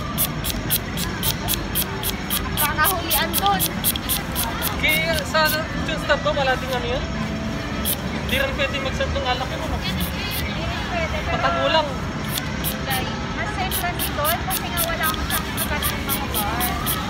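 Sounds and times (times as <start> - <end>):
city traffic rumble: 0.0 - 17.0
people chattering: 0.0 - 17.0.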